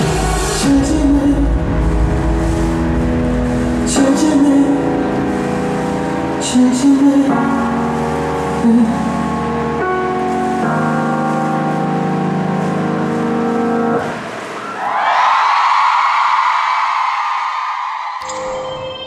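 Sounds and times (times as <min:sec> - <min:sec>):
ballad held chords: 0:00.0 - 0:14.6
audience cheering and applauding: 0:14.6 - 0:18.3
electronic jingle: 0:18.2 - 0:19.0.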